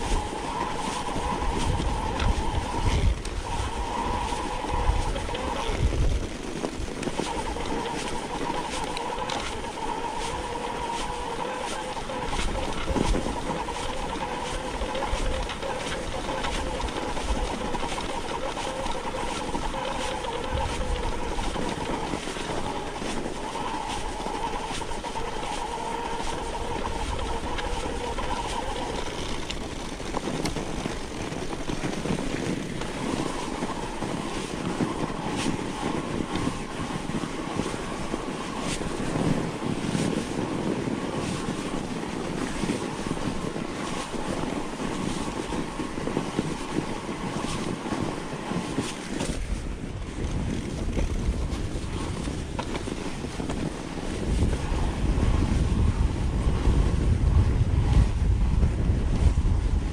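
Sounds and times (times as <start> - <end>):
bike clicks and rattles: 0.0 - 54.6
bike tyres rushing over snow: 0.0 - 59.9
wind rumble on microphone: 0.0 - 59.9.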